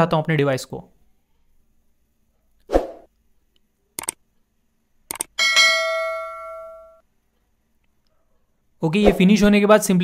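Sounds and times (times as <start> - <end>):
mouse clicks: 3.5 - 4.2, 5.1 - 5.3
notification bell ringing: 5.4 - 7.0.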